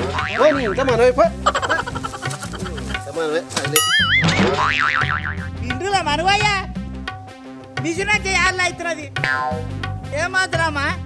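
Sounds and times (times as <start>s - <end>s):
warbling cartoon boing: 0.0s - 2.9s, 3.9s - 5.6s
background music: 0.0s - 11.0s.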